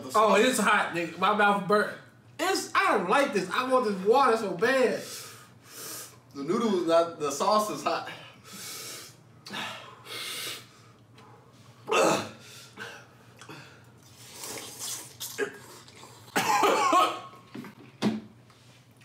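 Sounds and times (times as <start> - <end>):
man breathing hard: 8.1 - 11.6
man coughing: 11.9 - 13.1, 16.4 - 17.3.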